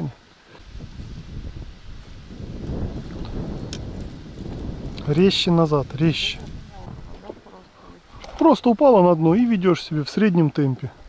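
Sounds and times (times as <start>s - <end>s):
wind buffeting microphone: 0.5s - 9.9s.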